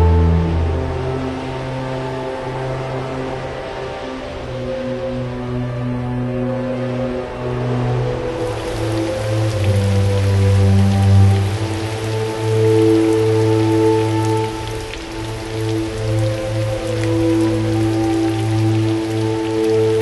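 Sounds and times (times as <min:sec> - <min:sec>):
slow film score: 0:00.0 - 0:20.0
steady rain falling: 0:00.0 - 0:20.0.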